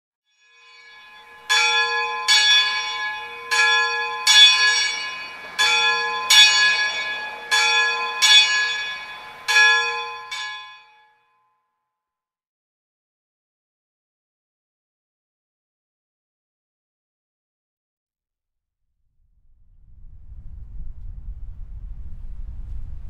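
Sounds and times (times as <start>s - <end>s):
church bell ringing: 0.4s - 11.3s.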